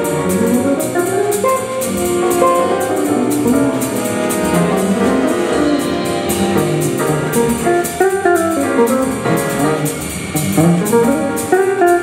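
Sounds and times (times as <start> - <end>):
electric guitar melody: 0.0 - 12.0
jazz band playing: 0.0 - 12.0
cymbal strokes: 1.6 - 11.8.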